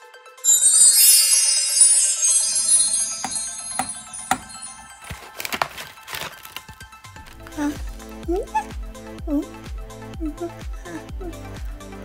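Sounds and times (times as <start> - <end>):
twinkling sparkle effect: 0.4 - 5.1.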